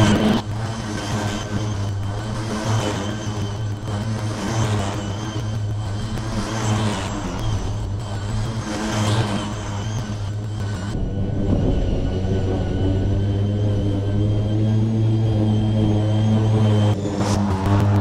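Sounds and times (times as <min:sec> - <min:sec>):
electric lawn mower cutting grass: 0:00.0 - 0:18.0.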